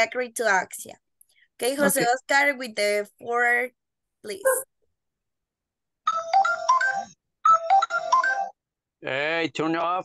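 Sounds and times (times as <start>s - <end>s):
mobile phone ringtone: 6.0s - 8.8s.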